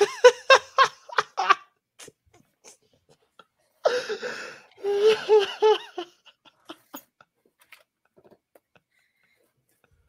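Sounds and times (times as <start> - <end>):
person laughing hard: 0.0 - 1.7, 3.9 - 7.2.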